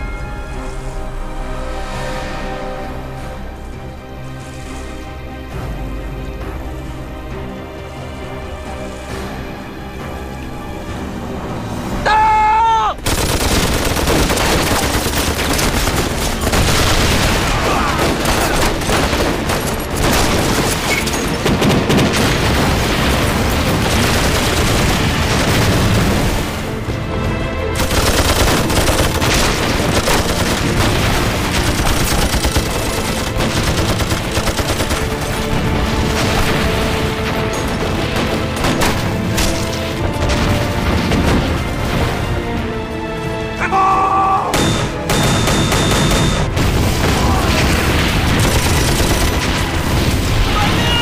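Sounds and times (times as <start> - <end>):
dramatic music: 0.0 - 51.0
rifle and machine-gun fire: 13.0 - 26.7, 27.7 - 39.5, 44.6 - 50.8
explosions: 13.1 - 20.8, 21.4 - 26.8, 44.6 - 51.0.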